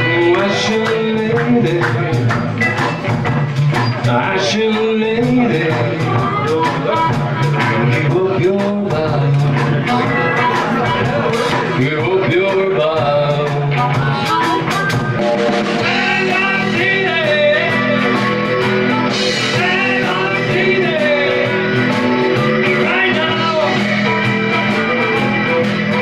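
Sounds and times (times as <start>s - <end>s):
blues-rock band playing: 0.0s - 26.0s.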